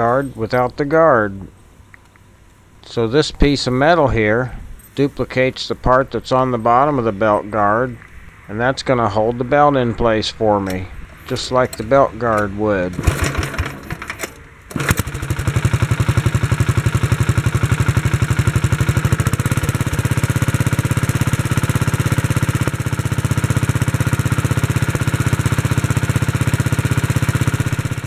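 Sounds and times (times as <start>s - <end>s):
small engine starting and running: 11.1s - 28.0s.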